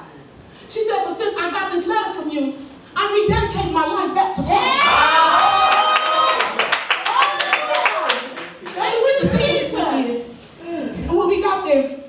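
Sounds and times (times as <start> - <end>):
congregation clapping hands: 5.6 - 9.2.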